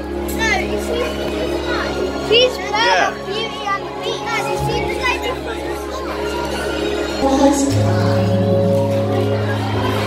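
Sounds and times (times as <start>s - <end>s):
children shouting and squealing: 0.0s - 10.0s
stage show music: 0.0s - 10.0s.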